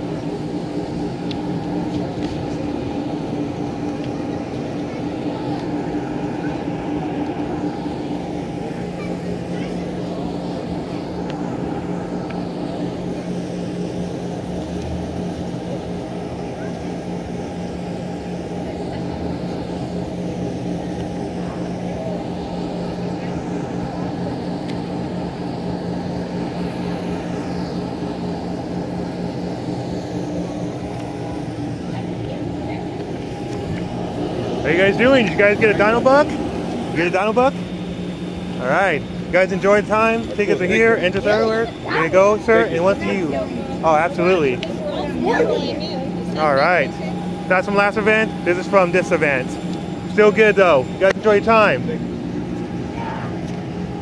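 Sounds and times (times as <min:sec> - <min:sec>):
low mechanical hum: 0:00.0 - 0:54.0.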